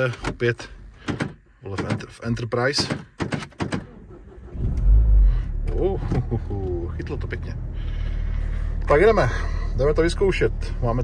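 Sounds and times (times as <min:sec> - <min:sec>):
car engine starting: 0:03.0 - 0:11.0.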